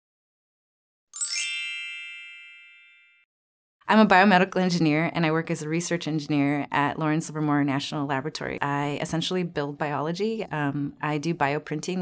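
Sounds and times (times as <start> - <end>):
bright chime sting: 1.2 - 3.2.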